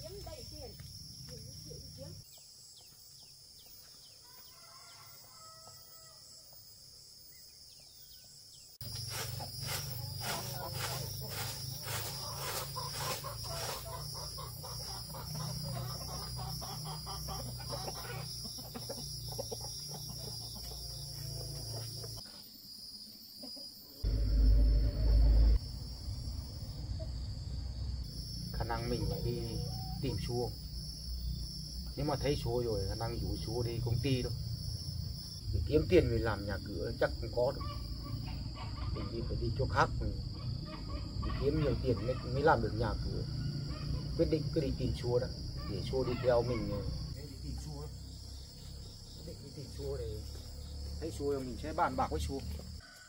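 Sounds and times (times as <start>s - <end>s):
high insect drone: 0.0s - 53.0s
chickens clucking: 9.0s - 22.2s, 37.4s - 39.5s
loud low rumble: 24.0s - 28.0s.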